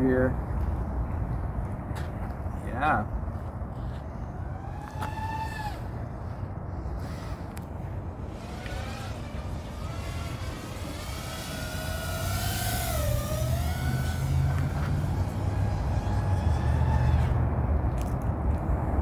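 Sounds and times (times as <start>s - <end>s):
quadcopter motors whining: 4.0s - 18.1s.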